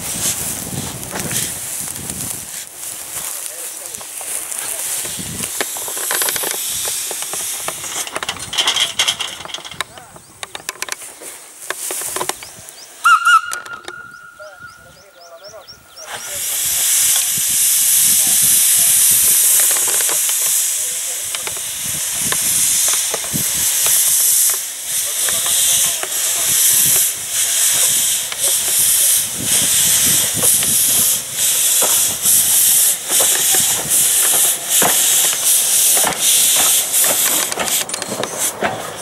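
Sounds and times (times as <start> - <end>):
steam venting hiss: 0.0 - 39.0
steam locomotive whistle: 13.0 - 14.8.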